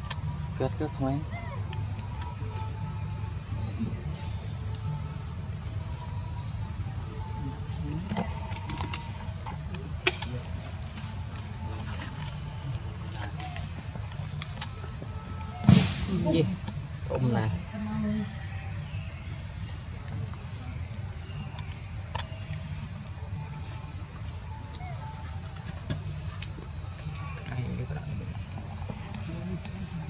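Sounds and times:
high-pitched insect drone: 0.0s - 30.0s.

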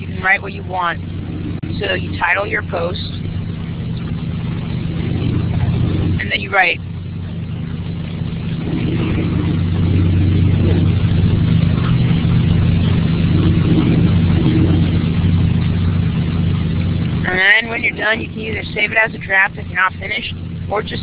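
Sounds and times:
low-pitched hum: 0.0s - 21.0s.

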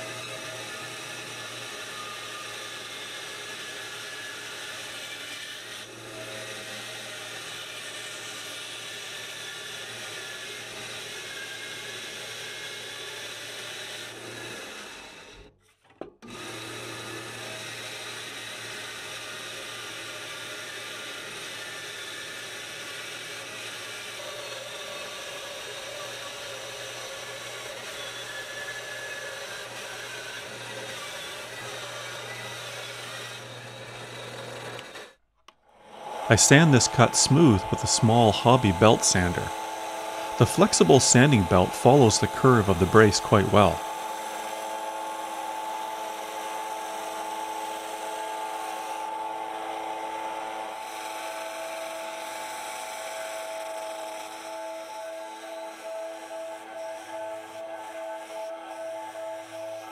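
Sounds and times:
bandsaw motor hum: 0.0s - 15.4s, 16.2s - 35.1s, 35.8s - 59.9s.

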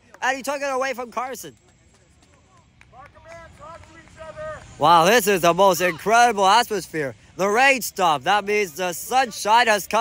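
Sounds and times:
distant voices shouting: 2.9s - 10.0s.

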